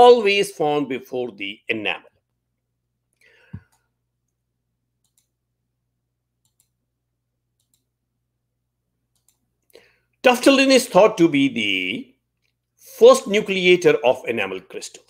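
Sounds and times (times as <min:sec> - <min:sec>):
faint clicks: 0:05.0 - 0:05.3, 0:06.4 - 0:06.8, 0:07.6 - 0:07.9, 0:09.1 - 0:09.8.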